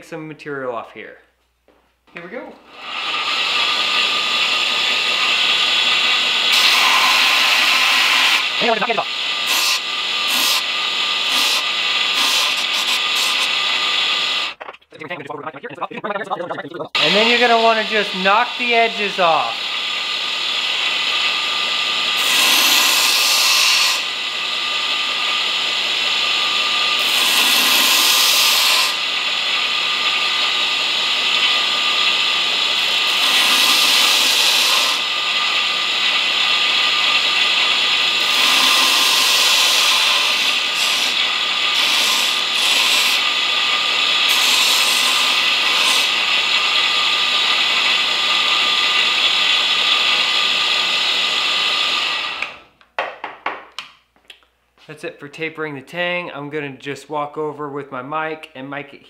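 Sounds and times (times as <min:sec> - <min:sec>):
belt grinder motor running: 0:02.6 - 0:14.6, 0:17.0 - 0:52.7
steel grinding on belt: 0:02.7 - 0:14.6, 0:17.0 - 0:52.5.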